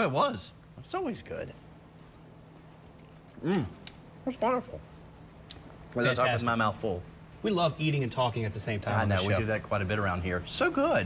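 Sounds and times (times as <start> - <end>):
faint steady hum: 0.0 - 11.0
man humming appreciatively: 3.4 - 3.8.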